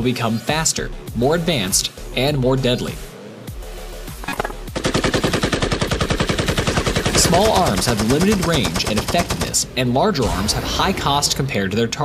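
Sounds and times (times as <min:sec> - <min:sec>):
automatic gunfire: 0:04.7 - 0:09.7.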